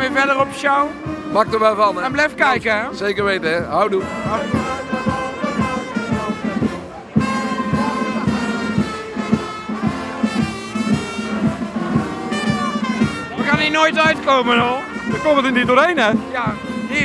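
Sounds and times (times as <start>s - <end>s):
brass band playing: 0.0s - 17.0s
steady drum beat: 0.0s - 17.0s.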